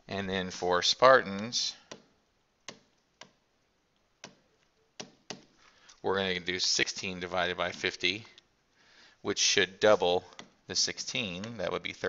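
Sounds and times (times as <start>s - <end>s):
stylus tapping on tablet: 1.8s - 3.4s, 4.1s - 5.6s.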